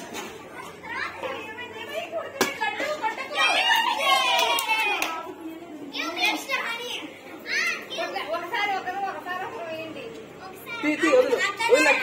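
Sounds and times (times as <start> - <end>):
children talking and calling out: 0.0 - 12.0.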